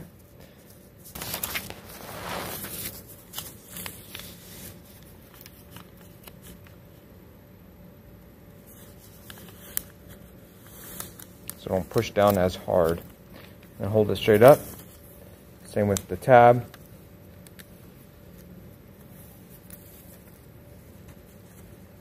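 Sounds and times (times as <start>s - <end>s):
paper being folded and creased: 0.5s - 6.8s, 8.6s - 15.2s, 16.7s - 22.0s.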